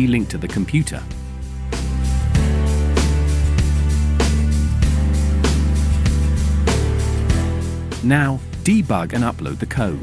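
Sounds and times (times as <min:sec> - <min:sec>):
instrumental music with steady beat: 0:00.0 - 0:10.0.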